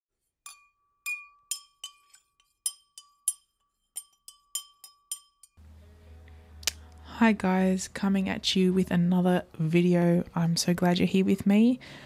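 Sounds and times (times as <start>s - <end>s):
glassy clinks: 0.5s - 5.6s.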